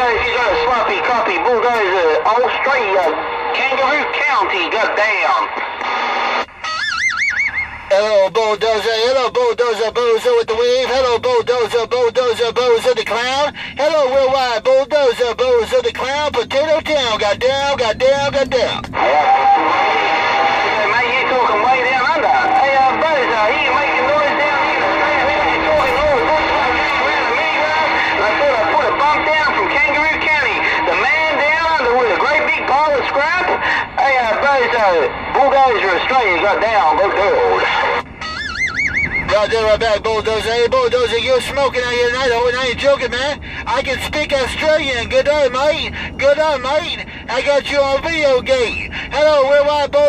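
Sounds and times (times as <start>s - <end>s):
radio hiss: 0.0s - 6.6s, 7.7s - 38.1s, 39.2s - 50.0s
high warbling radio tone: 0.0s - 43.2s
low hum: 0.0s - 50.0s.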